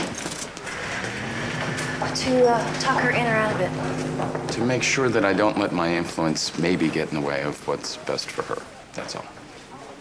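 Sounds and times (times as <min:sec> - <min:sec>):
steady low drone: 0:00.6 - 0:07.5.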